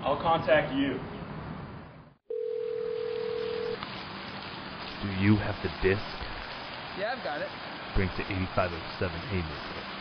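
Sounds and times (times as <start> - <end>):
electronic telephone tone: 2.3 - 3.8
background hiss: 2.3 - 10.0.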